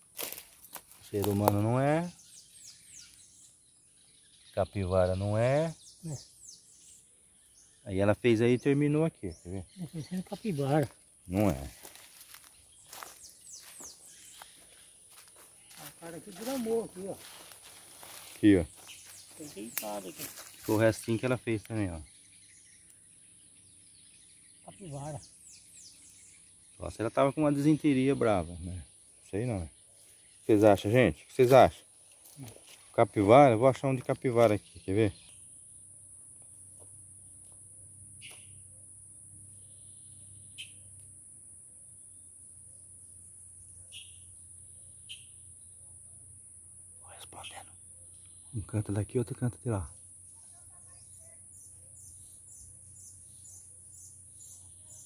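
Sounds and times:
high-pitched insect hum: 0.0s - 55.0s
faint bird chirps: 0.6s - 33.3s, 37.7s - 41.0s, 43.5s - 46.2s, 46.9s - 55.0s.

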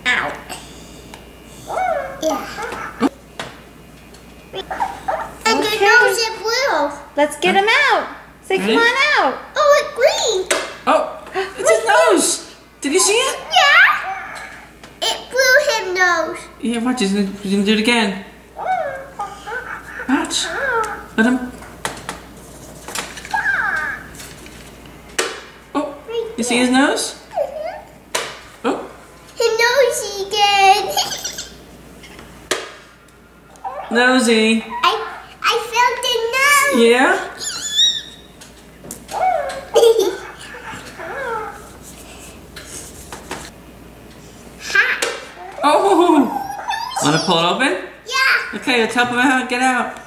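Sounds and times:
child speaking: 1.7s - 3.1s, 4.6s - 7.1s, 8.6s - 10.5s, 13.2s - 16.6s, 18.6s - 21.2s, 23.3s - 24.2s, 26.0s - 26.6s, 27.3s - 27.9s, 29.4s - 31.5s, 34.7s - 38.1s, 39.1s - 41.7s, 44.6s - 48.6s
short high squeaks: 37.4s - 38.4s.

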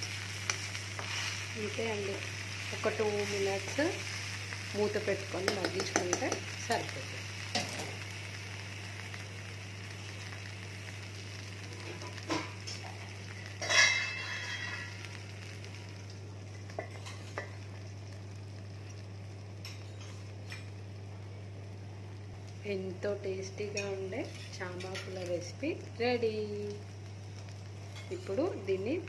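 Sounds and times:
food sizzling in oil: 0.0s - 29.0s
steel lid clanging on pan: 13.6s - 14.9s.

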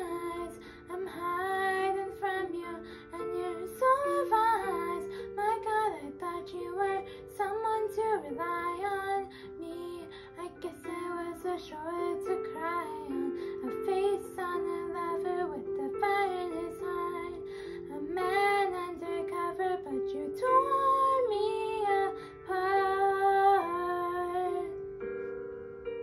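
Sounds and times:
girl singing: 0.0s - 24.8s.

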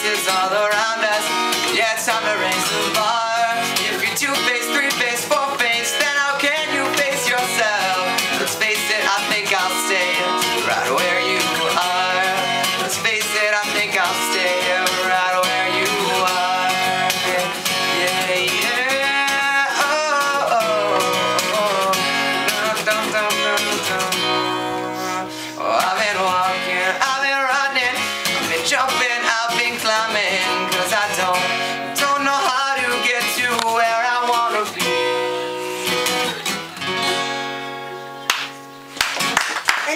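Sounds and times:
man singing: 0.0s - 36.8s
acoustic guitar strumming: 0.0s - 39.9s.

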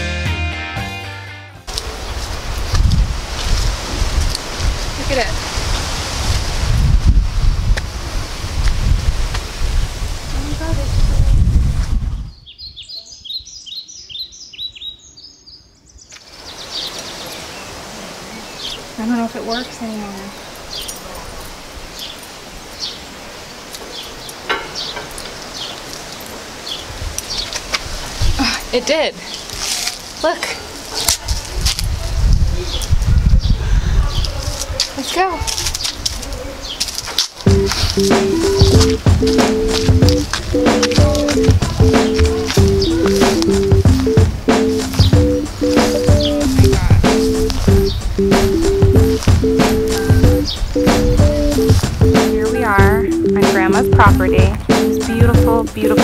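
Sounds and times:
music: 0.0s - 1.7s, 37.5s - 56.0s
wind buffeting microphone: 1.7s - 13.6s, 26.8s - 28.8s, 30.7s - 56.0s
faint voices: 37.5s - 56.0s.

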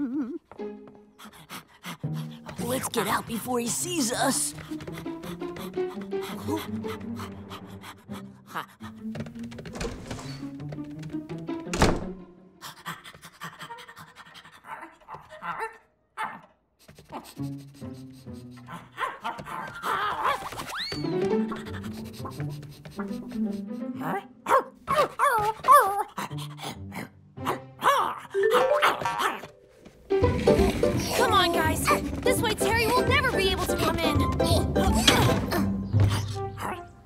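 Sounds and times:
background music: 0.0s - 12.9s, 17.1s - 37.0s
cartoon dog panting: 1.2s - 9.0s, 12.6s - 15.3s, 16.8s - 19.1s, 21.4s - 24.3s
cartoon puppy yipping: 24.0s - 26.2s, 27.4s - 29.5s.

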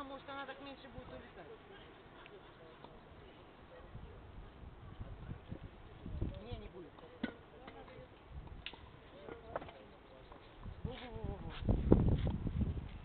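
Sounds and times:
distant people talking: 1.2s - 11.5s.

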